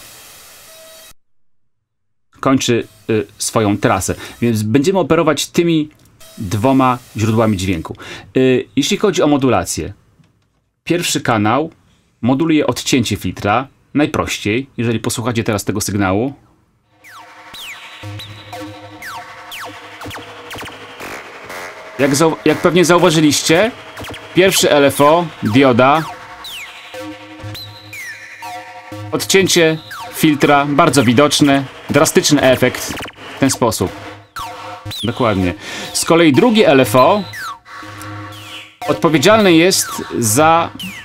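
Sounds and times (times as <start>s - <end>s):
synthesizer drone with filter sweeps: 16.9s - 41.0s.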